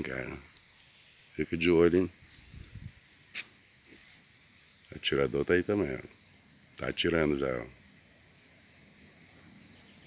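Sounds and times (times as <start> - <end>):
high insect hiss: 0.0 - 10.0.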